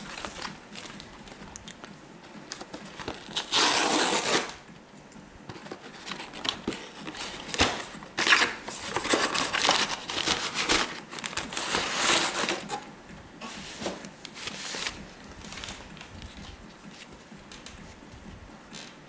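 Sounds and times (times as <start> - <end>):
cardboard box rustling and scraping: 5.5 - 12.8.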